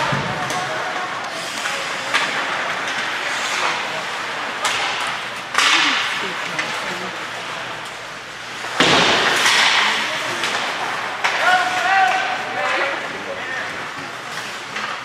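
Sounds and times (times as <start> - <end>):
person calling out: 5.7 - 7.2
slams against hockey boards: 8.8 - 12.3.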